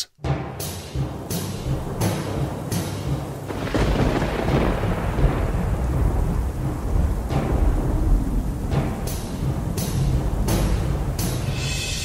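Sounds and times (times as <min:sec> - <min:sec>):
rain: 0:01.8 - 0:12.0
thunder rolling: 0:01.9 - 0:11.6.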